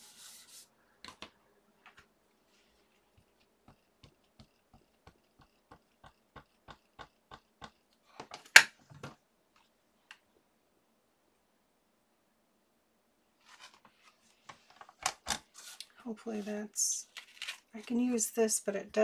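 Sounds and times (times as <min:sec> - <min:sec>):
ink pad tapping on stamp: 0:03.7 - 0:07.8.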